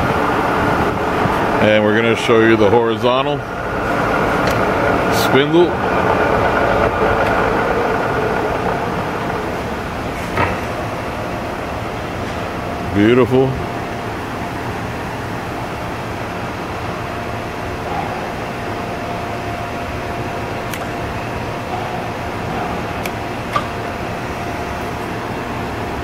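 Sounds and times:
milling machine humming: 0.0 - 26.0
spindle whine: 0.0 - 26.0.

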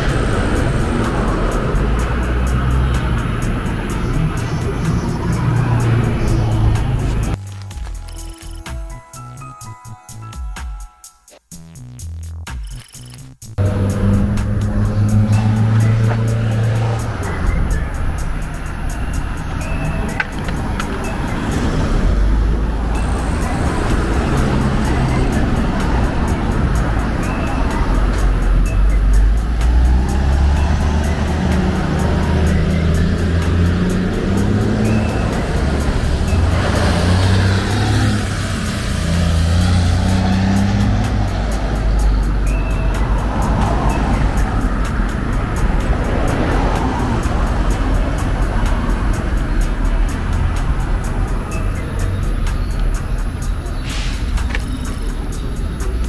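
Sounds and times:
cars passing on road: 0.0 - 10.8, 12.7 - 56.0
music with deep bass: 0.0 - 56.0.

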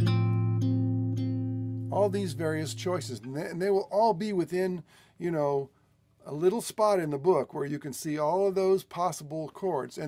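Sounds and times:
jazz guitar chord ringing: 0.0 - 3.4.

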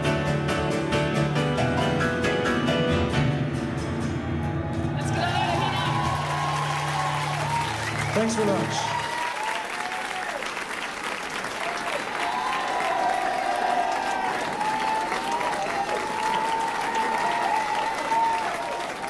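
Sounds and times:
crowd shouts and whoops: 4.9 - 10.5, 11.6 - 19.0
audience applauding: 5.0 - 19.0.

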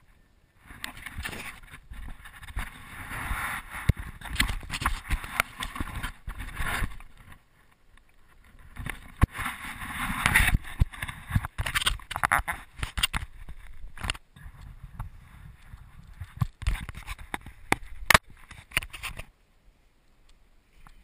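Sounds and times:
rubbing against camera housing: 8.8 - 14.2, 16.1 - 19.3.

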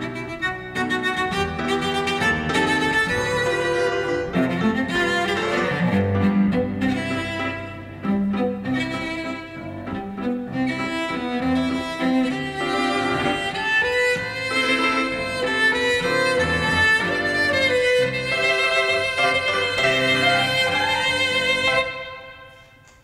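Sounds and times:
piano accompaniment: 0.0 - 22.6
bowed cello melody: 0.0 - 22.8.

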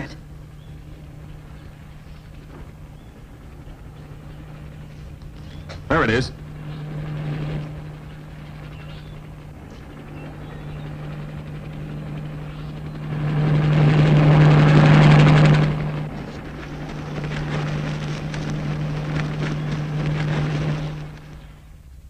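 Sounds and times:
jet aircraft roar overhead: 0.0 - 22.0.

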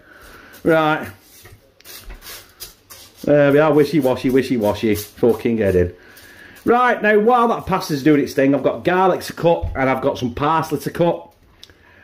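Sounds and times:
dry spaghetti scraping in pot: 0.0 - 8.8.

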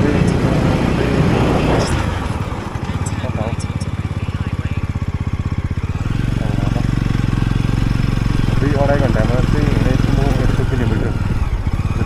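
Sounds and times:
single-cylinder engine running: 0.0 - 12.0.

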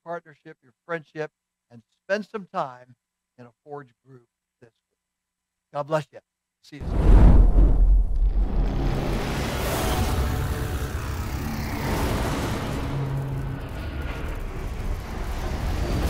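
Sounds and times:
rushing whooshes: 6.8 - 9.8
deep rumble of flames: 6.8 - 16.0.

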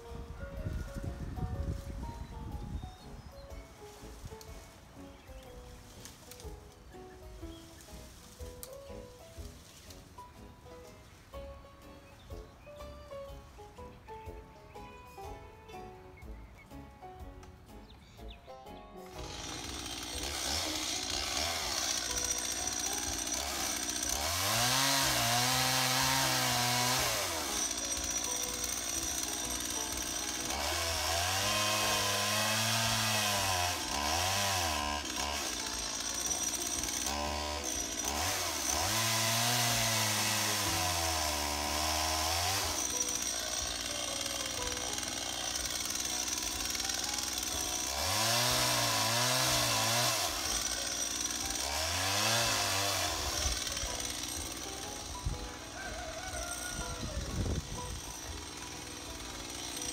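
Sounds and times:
chainsaw revving: 19.1 - 59.9.

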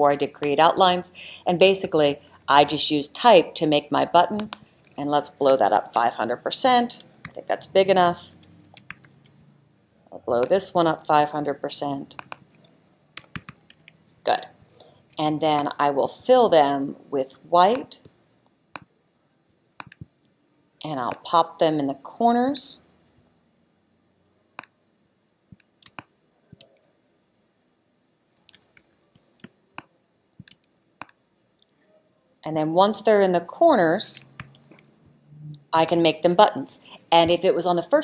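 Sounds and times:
computer keyboard keystrokes: 8.4 - 9.3, 12.1 - 14.0
computer mouse clicks: 8.4 - 9.4, 12.1 - 14.0, 19.8 - 20.1, 25.5 - 26.9, 28.3 - 31.2.

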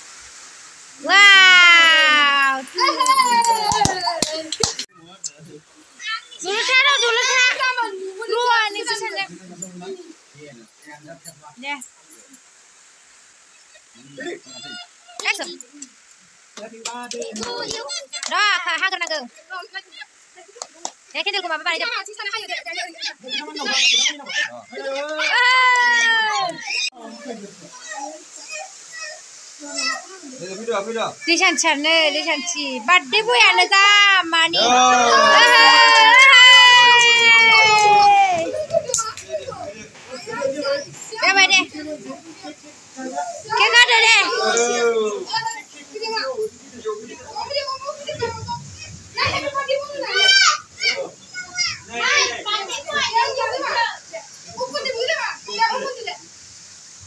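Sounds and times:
children's excited voices: 1.0 - 4.9, 5.8 - 10.3, 12.5 - 16.5, 17.1 - 56.9.

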